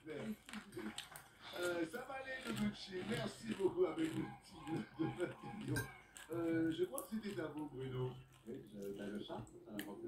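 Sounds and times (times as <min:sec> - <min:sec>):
television voices talking: 0:00.0 - 0:10.0.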